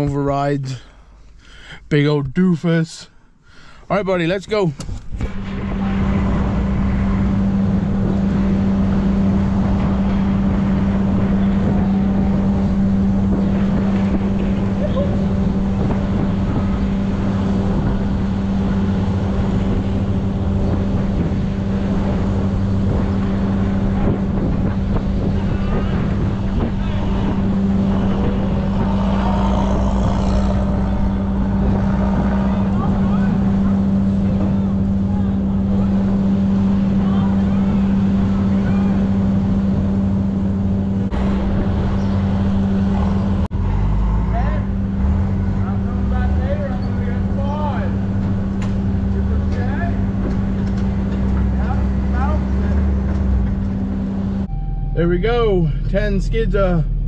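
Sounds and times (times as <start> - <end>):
engine running steadily: 0.0 - 57.0
rising and falling whines: 4.1 - 57.0.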